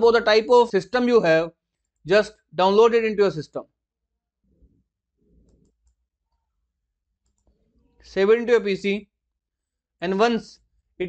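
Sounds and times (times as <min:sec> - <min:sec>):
computer mouse clicks: 0:05.3 - 0:06.4, 0:07.2 - 0:07.6.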